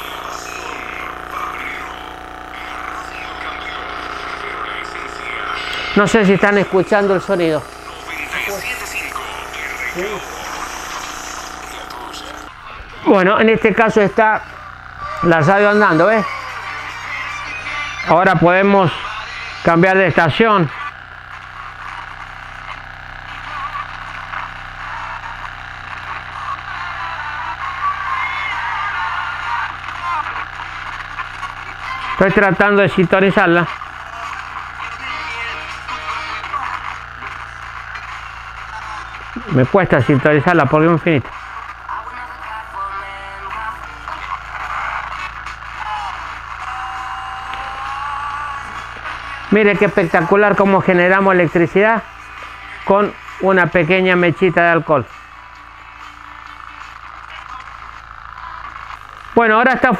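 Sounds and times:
low steady hum: 0.0s - 59.9s
radio hiss: 0.0s - 59.9s
radio voices through tiny speaker: 0.0s - 59.9s.

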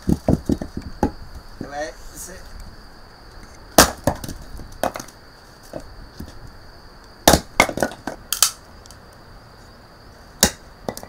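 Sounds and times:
hatchet chopping firewood: 3.8s - 5.1s, 7.2s - 8.6s, 10.4s - 11.0s.

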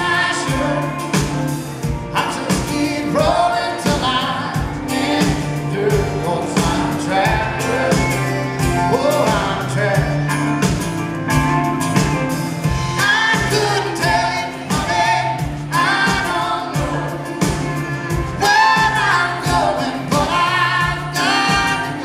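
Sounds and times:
electric bass: 0.0s - 22.0s
guitar: 0.0s - 22.0s
drum beat: 0.4s - 22.0s
woman singing: 13.0s - 17.8s, 18.4s - 22.0s.

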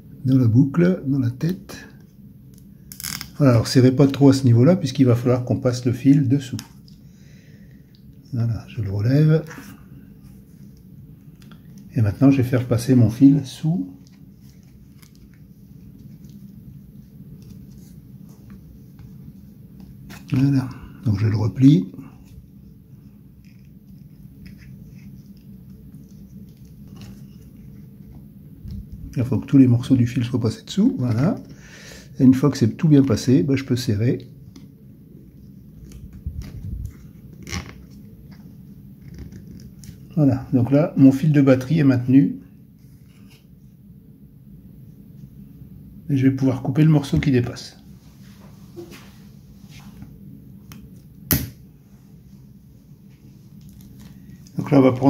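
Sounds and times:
low room hum: 0.0s - 55.0s
soft clicks and rustles of wires: 53.0s - 54.8s.

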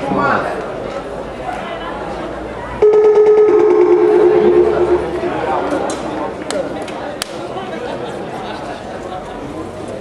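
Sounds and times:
background chatter: 0.0s - 10.0s
two-note electronic chime: 2.8s - 5.8s.

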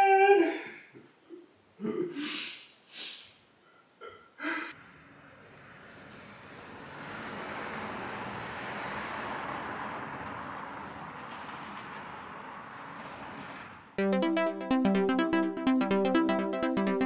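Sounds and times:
vehicle passing by: 4.8s - 14.0s.

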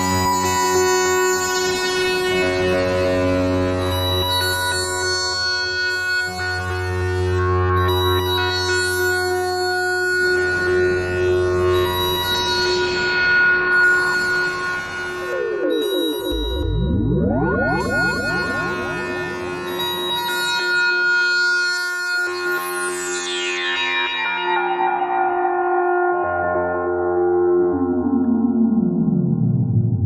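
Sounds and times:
analog synthesizer drone: 9.1s - 21.4s.

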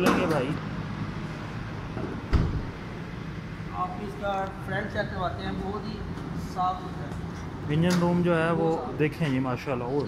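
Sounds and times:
car bonnet latch thump: 2.3s - 2.8s.

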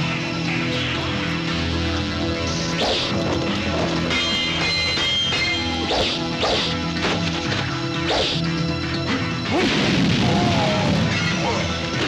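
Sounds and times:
background music: 0.0s - 12.0s
loud crashing blast: 9.6s - 11.2s.

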